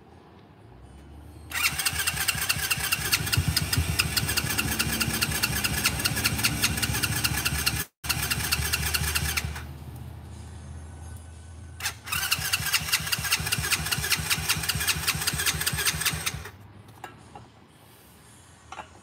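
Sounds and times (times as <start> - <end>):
small engine running rough: 1.5 - 10.5, 11.8 - 16.6.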